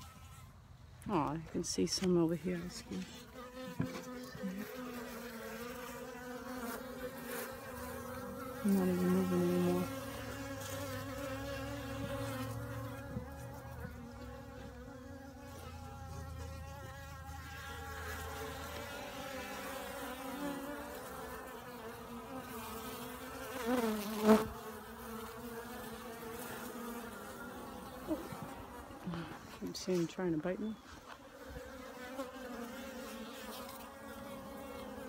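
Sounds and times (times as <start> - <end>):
honeybees buzzing: 0.0 - 35.0.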